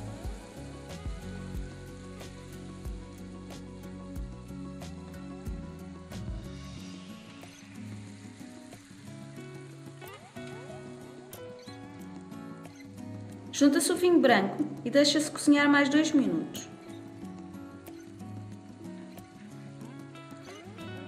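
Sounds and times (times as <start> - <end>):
fish frying in a pan: 0.0 - 13.5
soft acoustic music: 0.0 - 21.0.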